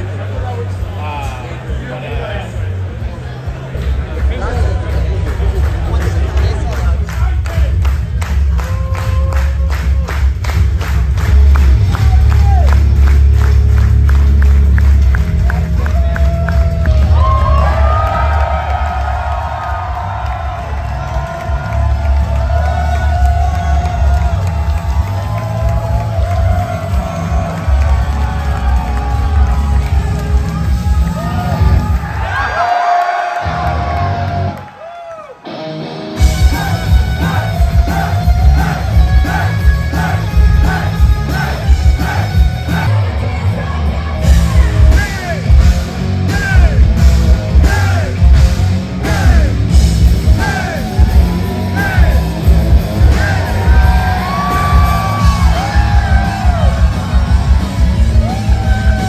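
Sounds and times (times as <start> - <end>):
loud rock music: 0.0 - 32.6, 35.4 - 59.0
music with heavy bass beat: 3.6 - 32.2, 36.1 - 59.0
crowd cheering and screaming: 11.5 - 13.1, 15.3 - 45.5, 49.0 - 59.0.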